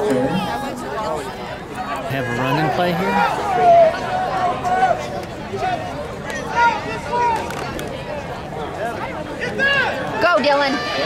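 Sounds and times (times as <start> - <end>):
crowd murmur: 0.0 - 11.0
people talking and calling out: 0.0 - 11.0.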